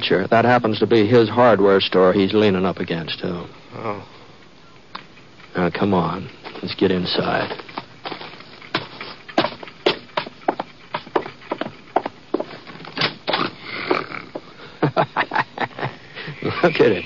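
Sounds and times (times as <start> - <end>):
irregular footsteps: 5.0 - 14.6
man snoring: 13.5 - 14.4.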